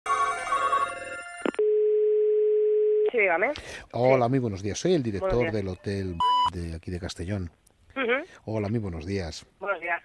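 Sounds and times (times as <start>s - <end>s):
telephone ringing: 0.1s - 3.1s
dial tone: 0.3s - 3.1s.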